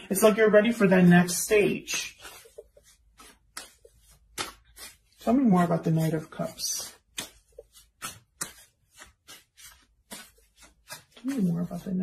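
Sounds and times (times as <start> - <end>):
cards being shuffled: 1.8 - 12.0.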